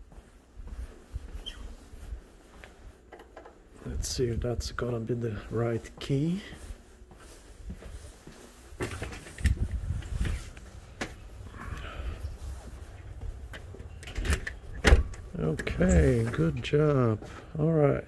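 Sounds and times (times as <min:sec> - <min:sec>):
footsteps walking: 0:00.0 - 0:17.9
microphone handling rumble: 0:08.8 - 0:13.8
key turning in door lock: 0:13.6 - 0:15.7.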